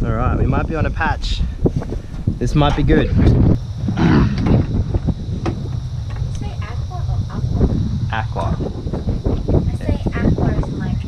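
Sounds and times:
wind rumbling on microphone: 0:00.0 - 0:11.0
person groaning: 0:04.0 - 0:04.4.

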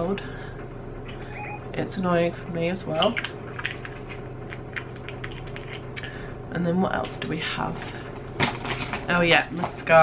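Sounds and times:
steady low hum: 0:00.0 - 0:10.0
make-up items clicking: 0:03.0 - 0:06.1.

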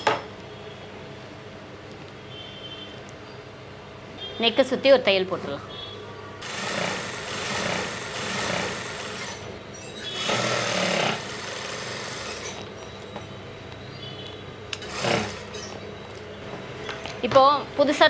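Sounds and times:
industrial sewing machine stitching: 0:06.4 - 0:09.5, 0:10.1 - 0:12.6, 0:14.8 - 0:15.8.

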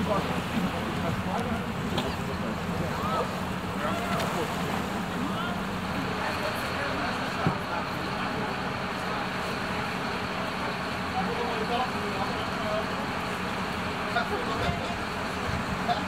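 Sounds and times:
fire engine idling hum: 0:00.0 - 0:16.0
indistinct chatter of people: 0:00.0 - 0:16.0.

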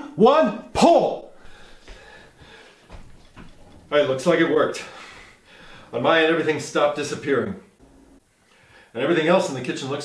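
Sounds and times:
man speaking: 0:00.0 - 0:01.4, 0:03.9 - 0:05.2, 0:05.9 - 0:07.7, 0:08.9 - 0:10.0
man breathing heavily: 0:01.3 - 0:03.0, 0:04.8 - 0:05.9.

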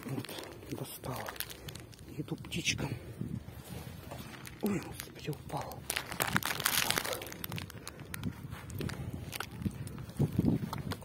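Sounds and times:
bag rustling and crinkling: 0:00.0 - 0:11.0.

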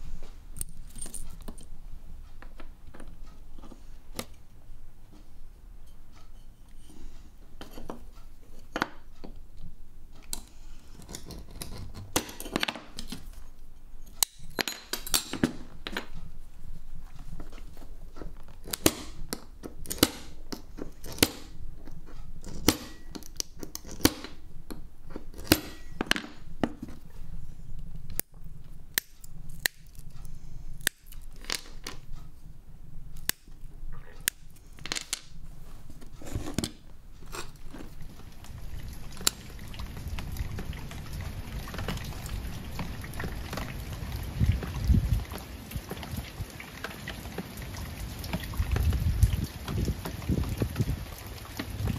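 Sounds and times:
low steady hum: 0:00.0 - 0:51.9
glass cutter clicks and snaps: 0:14.2 - 0:15.4.

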